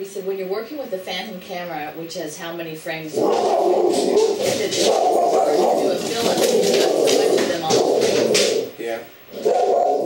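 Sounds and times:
people talking: 0:00.0 - 0:09.1.

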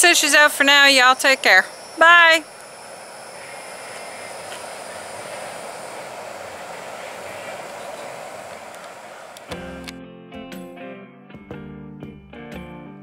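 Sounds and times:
faint high-pitched tones: 0:00.0 - 0:09.5
outdoor background hiss: 0:00.0 - 0:09.9.

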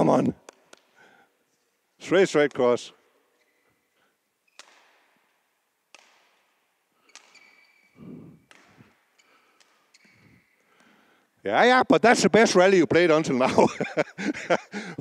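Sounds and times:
rackets hitting shuttlecock: 0:00.4 - 0:01.0, 0:03.4 - 0:11.0
shoe squeaks on court floor: 0:03.3 - 0:05.2, 0:06.0 - 0:10.7.

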